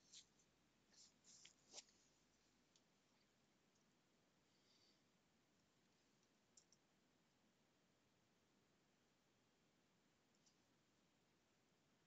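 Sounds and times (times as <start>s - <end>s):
computer mouse clicks: 5.6s - 6.9s, 10.3s - 10.7s.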